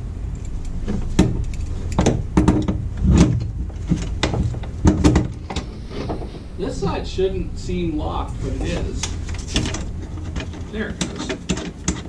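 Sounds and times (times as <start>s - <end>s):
low rumble: 0.0s - 11.4s
metal parts and tools clicking: 0.3s - 2.7s, 9.0s - 12.0s.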